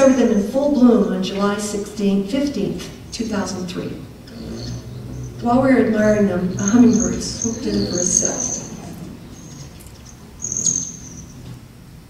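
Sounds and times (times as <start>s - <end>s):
hummingbird buzzing trill: 3.1s - 11.7s.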